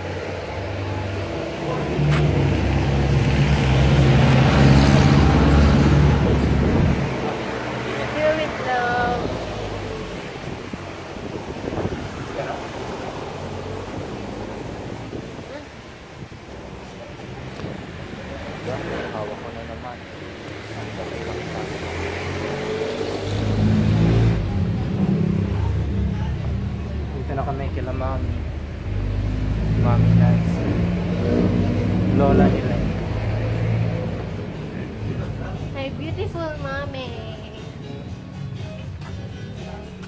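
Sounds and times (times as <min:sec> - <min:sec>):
vehicle engine passing by: 0:00.0 - 0:15.8, 0:16.5 - 0:40.0.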